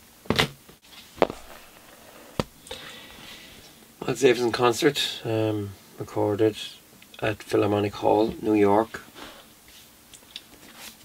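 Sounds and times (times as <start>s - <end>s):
case tapping on plastic sheet: 1.2s - 2.6s
faint plastic rustle: 8.8s - 11.0s.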